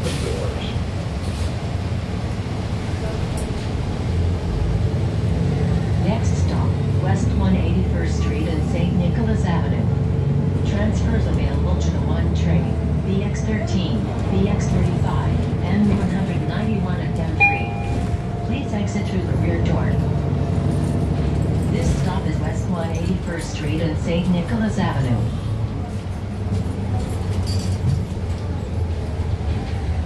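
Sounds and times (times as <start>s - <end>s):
bus drivetrain and road rumble: 0.0s - 30.0s.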